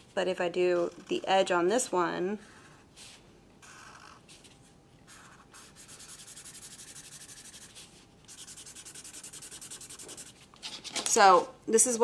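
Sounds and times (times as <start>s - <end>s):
marker scribbling on paper: 2.4s - 10.4s.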